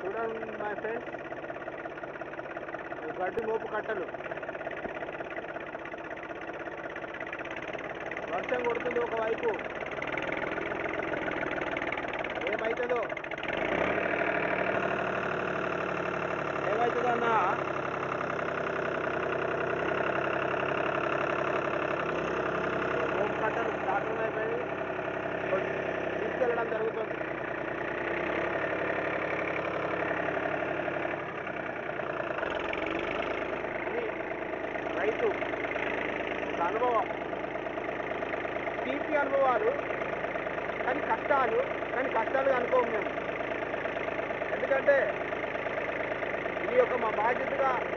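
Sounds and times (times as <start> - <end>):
engine running: 0.0 - 47.9.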